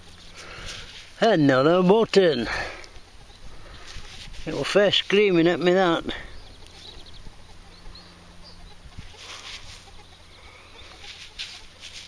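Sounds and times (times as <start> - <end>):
rustles: 0.0 - 12.0
high bird chirps: 6.2 - 11.7.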